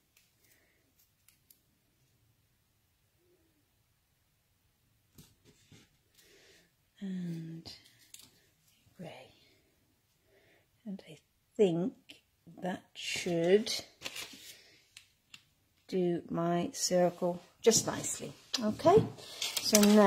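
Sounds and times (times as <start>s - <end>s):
cardstock strips clicking and tapping: 19.4s - 20.0s.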